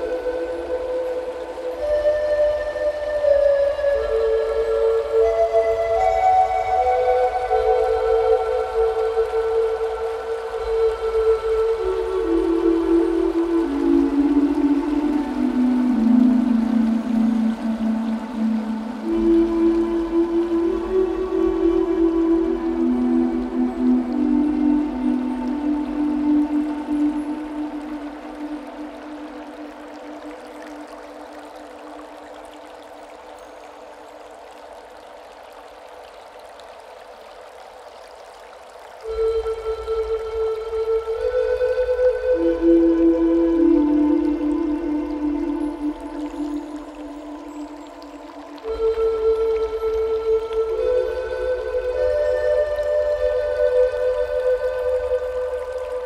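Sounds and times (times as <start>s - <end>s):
running water: 0.0s - 56.0s
slow flute melody: 0.0s - 56.0s.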